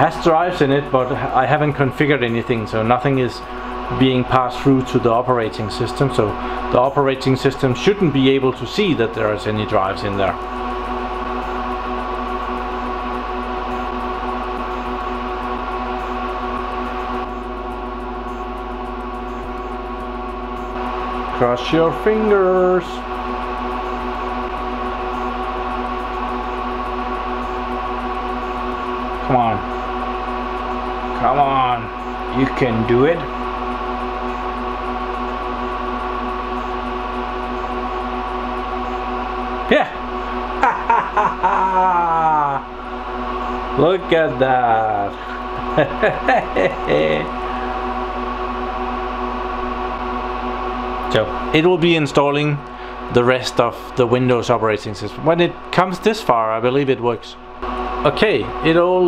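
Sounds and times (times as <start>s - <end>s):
rushing fan hiss: 0.0s - 59.0s
server fans whining: 0.0s - 59.0s.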